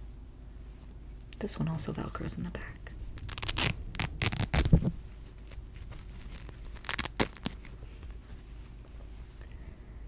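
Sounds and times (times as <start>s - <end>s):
velcro ripping open: 3.2s - 7.7s.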